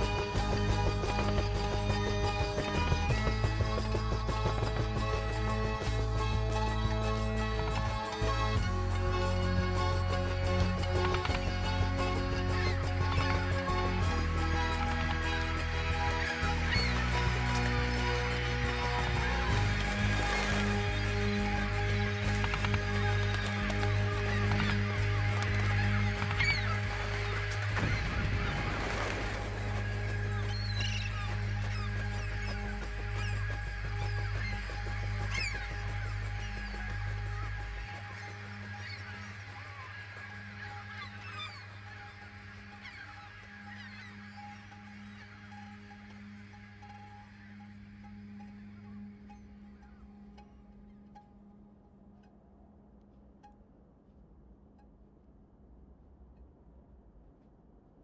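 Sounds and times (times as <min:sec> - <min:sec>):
flock of birds calling: 0:00.0 - 0:51.5
low steady drone: 0:00.0 - 0:58.0.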